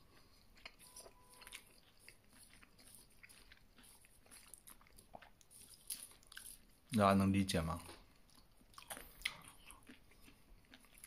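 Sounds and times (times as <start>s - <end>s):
close-up chewing: 0.0s - 11.0s.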